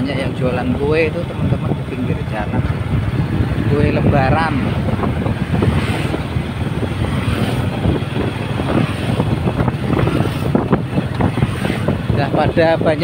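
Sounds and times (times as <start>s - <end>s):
vehicle engine running: 0.0s - 13.0s
wind buffeting microphone: 0.0s - 13.0s.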